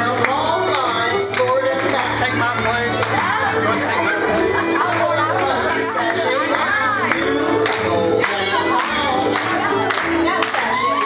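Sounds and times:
band playing square dance tune: 0.0s - 11.0s
person singing: 0.0s - 11.0s.

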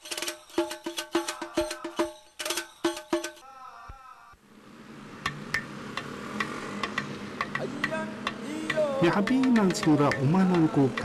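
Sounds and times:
sharp ticking clicks: 5.2s - 11.0s.

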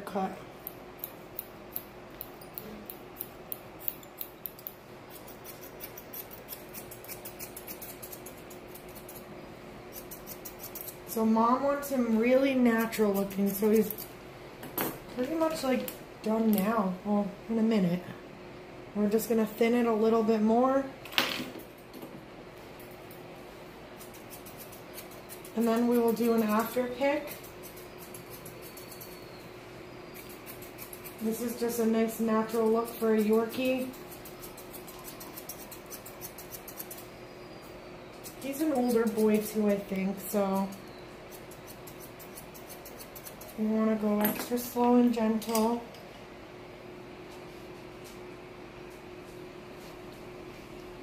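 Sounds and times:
faint steady hum: 0.0s - 51.0s
scissors snipping hair: 0.6s - 9.3s, 10.0s - 11.0s, 12.7s - 14.1s, 24.0s - 29.2s, 30.2s - 31.6s, 32.4s - 37.1s, 38.3s - 44.3s.

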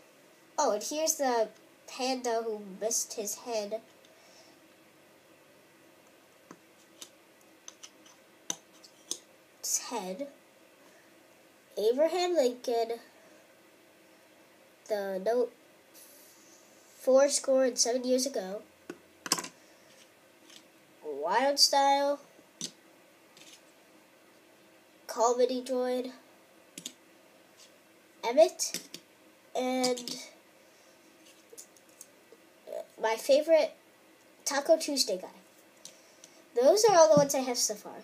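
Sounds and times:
plastic figures clicking on table: 7.7s - 9.2s, 19.3s - 19.6s.

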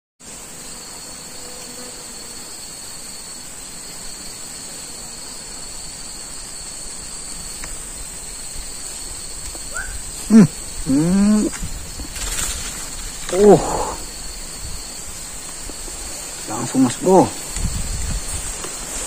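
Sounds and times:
insects droning: 0.2s - 19.0s.

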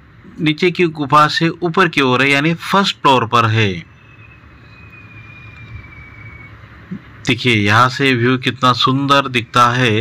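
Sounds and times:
faint thin whistle-like tone: 3.8s - 6.7s.

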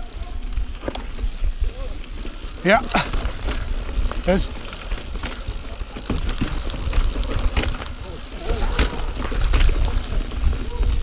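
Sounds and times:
bike tyres on dirt: 0.0s - 11.0s.

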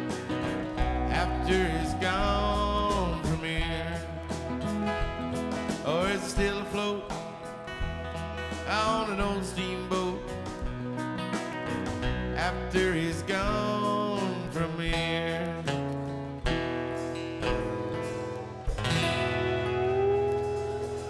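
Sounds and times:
bass: 0.0s - 21.0s
drums: 0.0s - 21.0s
sliding lead guitar line: 0.0s - 21.0s
strummed acoustic guitar: 0.0s - 21.0s.

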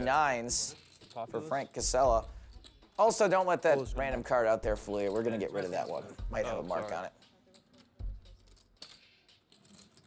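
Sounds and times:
poker chips clicking together: 6.8s - 10.0s.

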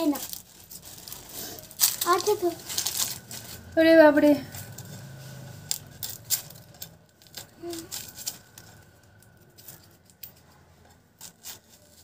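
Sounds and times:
dry onion skin crackling: 0.0s - 12.0s.

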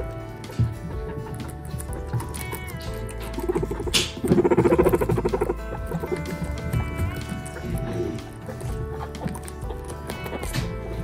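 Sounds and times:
background music with held tones: 0.0s - 11.0s
guinea pig pulsing call: 1.0s - 10.7s
sharp crack: 2.4s - 6.5s.

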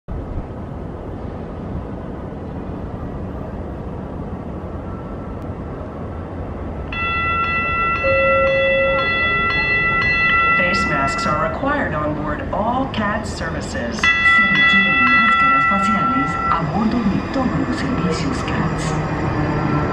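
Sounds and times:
train rumble: 0.1s - 19.9s
high pulsing multi-tone ringing: 6.9s - 19.9s.

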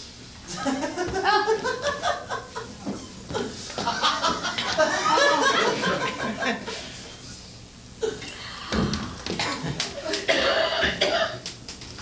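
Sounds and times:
person coughing and clearing throat: 9.4s - 11.4s.

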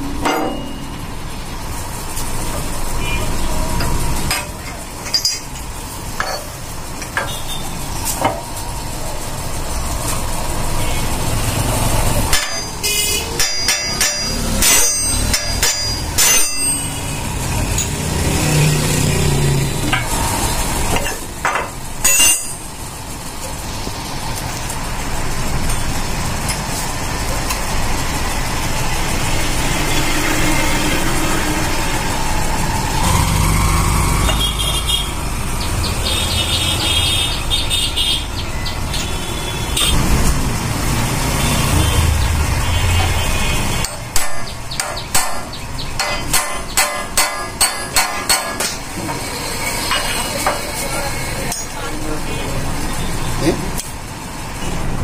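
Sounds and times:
low rumble of traffic: 0.0s - 55.0s
workshop noise: 0.0s - 55.0s
metal parts clanking on steel bench: 3.8s - 7.4s, 20.9s - 22.6s.

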